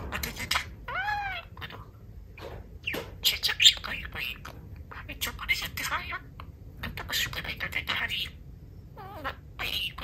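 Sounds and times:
budgerigar chattering and calling: 0:02.8 - 0:08.4, 0:09.0 - 0:10.0.

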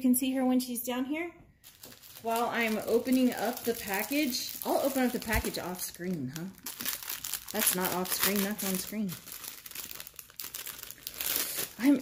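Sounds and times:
plastic bag crinkling: 0:01.6 - 0:12.0.

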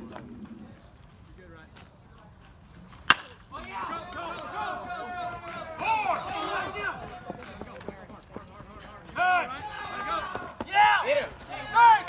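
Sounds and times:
bat cracking ball: 0:03.0 - 0:03.4
people shouting: 0:03.6 - 0:07.3, 0:09.2 - 0:12.0.

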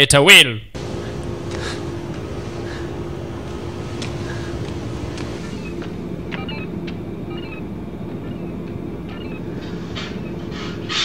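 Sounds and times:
low rumbling drone: 0:00.8 - 0:11.0.

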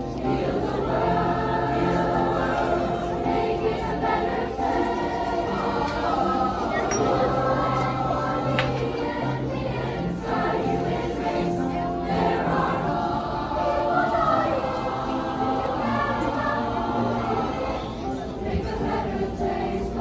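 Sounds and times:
choir singing held notes: 0:00.0 - 0:20.0.

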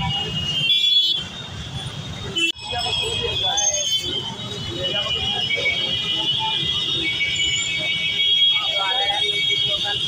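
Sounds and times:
road traffic rumbling: 0:00.0 - 0:10.0
vehicle horns honking: 0:00.0 - 0:10.0.

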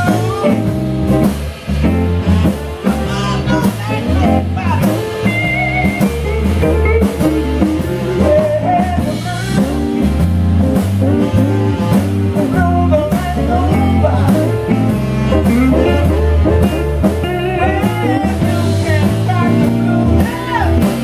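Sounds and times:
person singing: 0:00.0 - 0:00.9, 0:02.8 - 0:10.2, 0:11.0 - 0:21.0
blues band playing: 0:00.0 - 0:21.0.

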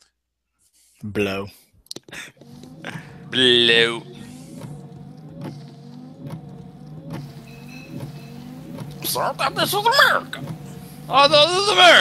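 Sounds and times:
steady low hum: 0:02.2 - 0:12.0
sliding squeak and click: 0:04.0 - 0:09.3.

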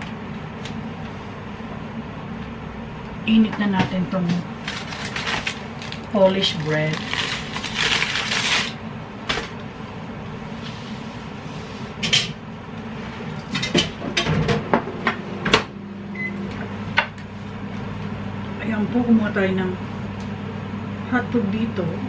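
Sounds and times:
low steady hum: 0:00.0 - 0:22.0
packaging rustling: 0:04.6 - 0:08.8.

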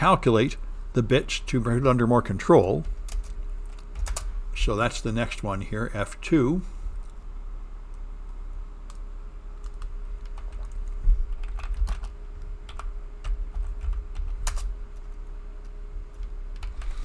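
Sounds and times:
typing on computer keyboard: 0:02.8 - 0:04.3, 0:09.6 - 0:14.7.

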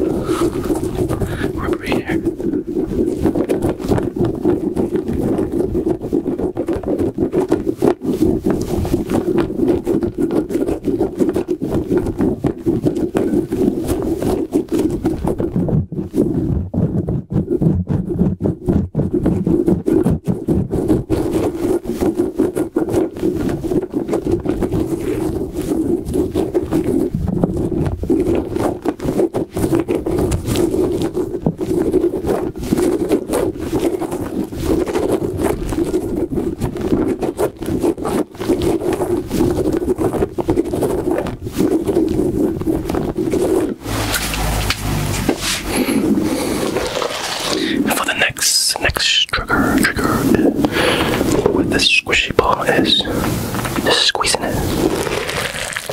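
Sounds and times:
hands rubbing a rubbery ball: 0:00.0 - 0:55.9.

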